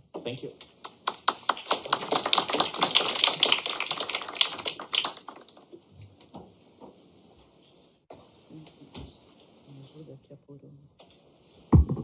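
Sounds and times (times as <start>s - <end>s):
audience applauding: 0.7s - 5.8s.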